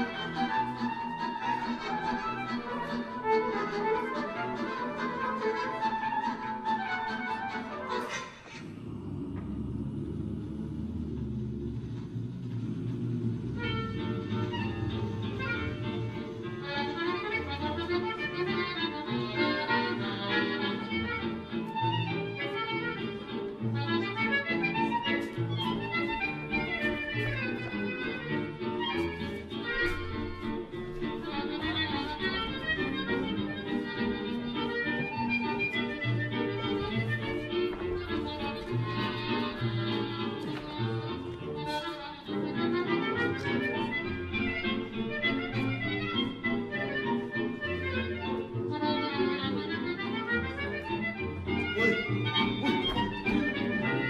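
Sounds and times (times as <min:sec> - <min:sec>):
lively instrumental tune: 0:00.0 - 0:08.6, 0:12.7 - 0:54.0.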